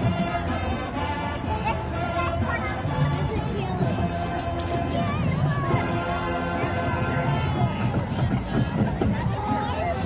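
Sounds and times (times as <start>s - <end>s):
crowd chatter: 0.0s - 10.0s
marching band playing: 0.0s - 10.0s.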